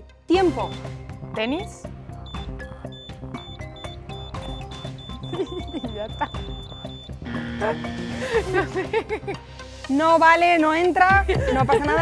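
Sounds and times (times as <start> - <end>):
background music: 0.0 - 12.0
woman's voice: 0.3 - 1.8, 5.5 - 6.2, 9.9 - 12.0
ticking clock: 2.2 - 7.4
short buzzer: 2.3 - 8.2.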